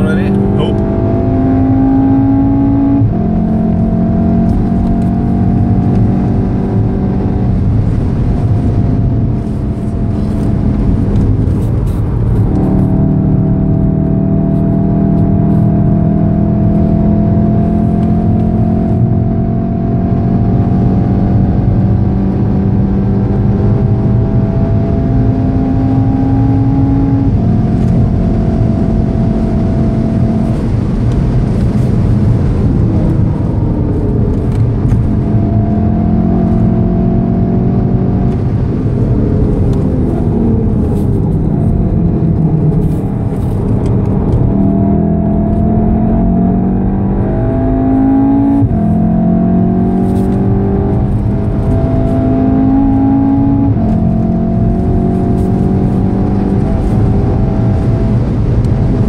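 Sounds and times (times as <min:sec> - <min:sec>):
car engine revving: 0:00.0 - 0:59.0
road and wind noise: 0:00.0 - 0:59.0.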